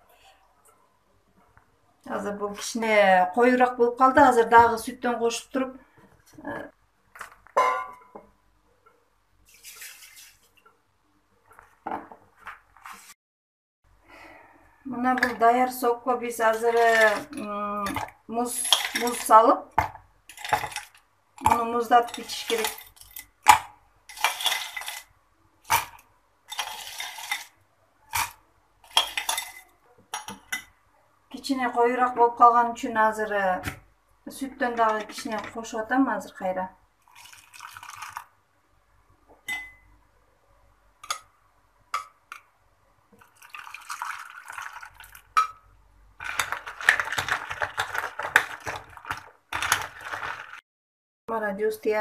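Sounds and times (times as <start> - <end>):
glass clinking on glass: 7.6 - 8.2
metal spoon scraping ceramic bowl: 24.1 - 25.1, 26.5 - 30.4
milkshake pouring: 37.0 - 38.4, 43.1 - 45.4, 46.2 - 50.6.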